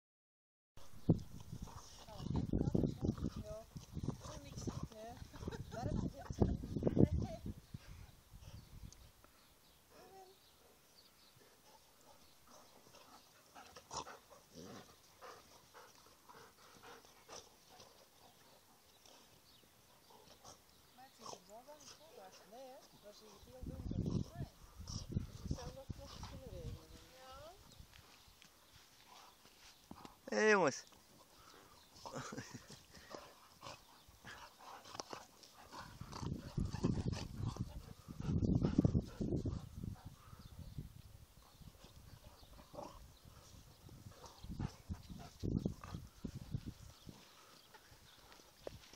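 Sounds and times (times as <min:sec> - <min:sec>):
dogs huffing and panting: 0:01.1 - 0:08.8, 0:10.6 - 0:30.2, 0:30.9 - 0:48.9
dogs growling: 0:12.5 - 0:19.4, 0:31.2 - 0:40.4, 0:42.4 - 0:43.4.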